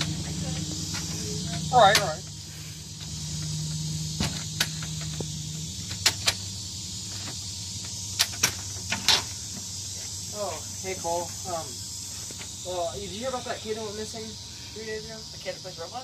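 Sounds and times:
insects buzzing: 0:00.0 - 0:16.0.

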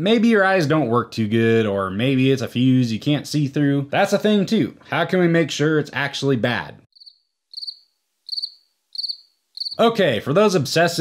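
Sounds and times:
cricket chirps: 0:06.9 - 0:09.8.

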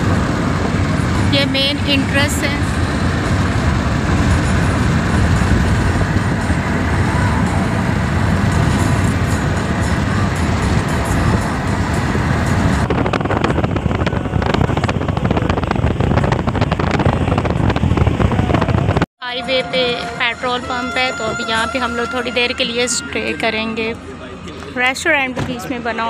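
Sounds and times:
wind buffeting microphone: 0:00.0 - 0:19.1
vehicle road and engine noise: 0:00.0 - 0:26.0.

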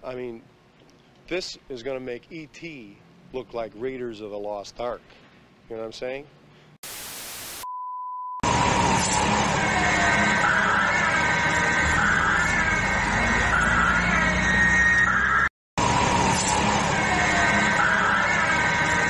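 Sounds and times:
siren wailing: 0:08.4 - 0:19.0.

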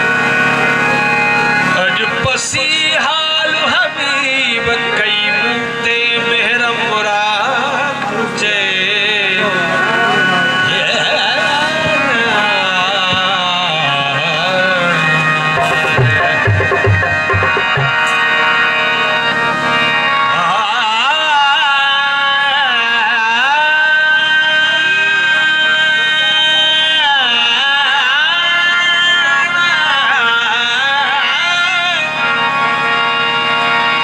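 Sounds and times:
harmonium sustained chord: 0:00.0 - 0:34.0.

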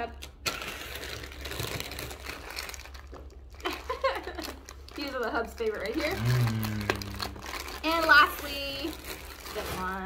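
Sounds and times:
plastic wrappers crinkling: 0:00.0 - 0:10.0.

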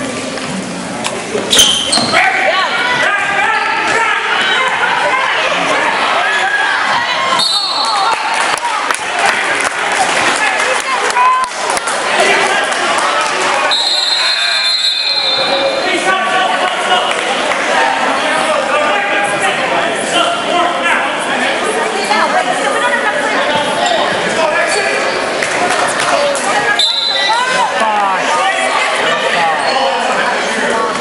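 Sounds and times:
voices in a gym: 0:00.0 - 0:31.0
referee's whistle: 0:01.5 - 0:02.2, 0:07.4 - 0:08.1, 0:13.7 - 0:15.8, 0:26.8 - 0:27.5
people shouting: 0:02.1 - 0:10.0.

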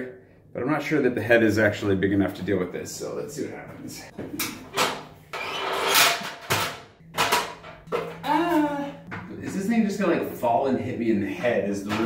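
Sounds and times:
metal stepladder knocks and rattles: 0:05.9 - 0:08.3.

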